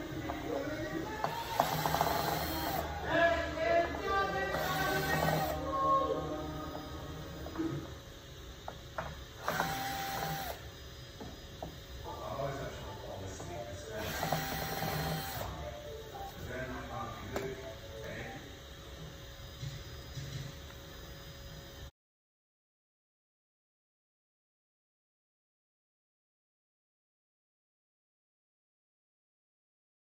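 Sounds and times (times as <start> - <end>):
background music: 0.0 - 7.6
cordless drill driving screws: 1.2 - 2.9, 4.4 - 5.6, 9.4 - 10.6, 14.0 - 15.6.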